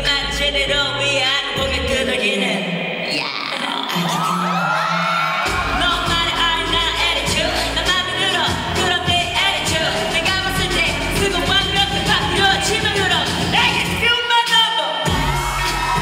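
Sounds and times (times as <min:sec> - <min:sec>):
woman singing into microphone: 0:00.0 - 0:15.2
pop backing track: 0:05.2 - 0:16.0
heavy low beat: 0:05.5 - 0:14.0, 0:15.1 - 0:16.0.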